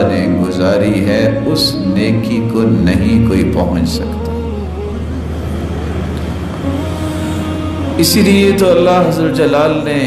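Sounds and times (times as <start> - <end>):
soft music with low drone: 0.0 - 10.0.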